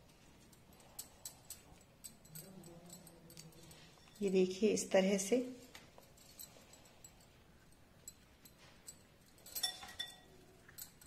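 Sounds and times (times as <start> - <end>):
faint low hum: 0.0 - 11.0
glass bangles clinking: 0.0 - 11.0.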